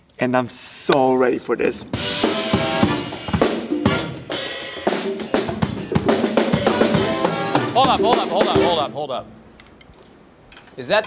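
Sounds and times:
drum kit played hard: 1.9 - 9.0
funk band playing: 1.9 - 9.1.

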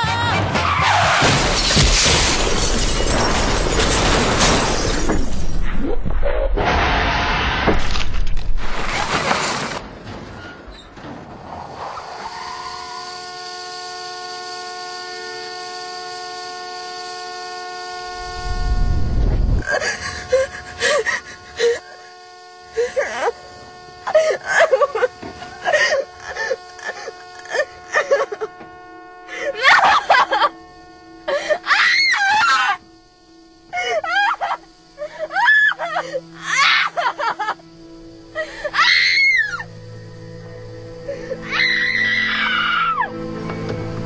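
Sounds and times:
car crash impact: 0.6 - 5.6
glass shattering: 1.2 - 5.6
steady held tone: 13.6 - 35.4.

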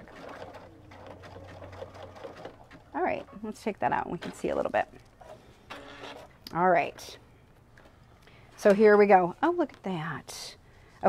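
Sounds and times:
sewing machine stitching: 0.0 - 3.4, 5.2 - 6.4.

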